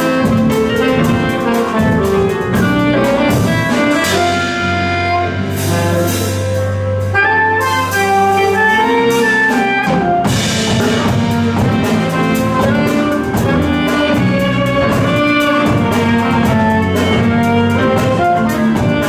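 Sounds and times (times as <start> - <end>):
alto saxophone melody: 0.0 - 19.0
drum kit with cymbal strokes: 0.0 - 19.0
violin melody: 0.0 - 19.0.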